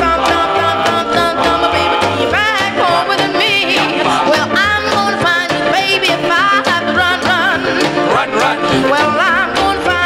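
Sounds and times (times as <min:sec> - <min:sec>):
doo-wop song from vinyl record: 0:00.0 - 0:10.0.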